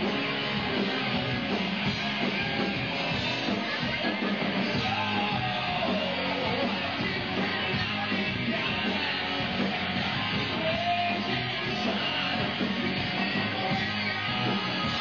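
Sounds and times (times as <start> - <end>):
hard rock band playing: 0.0 - 15.0.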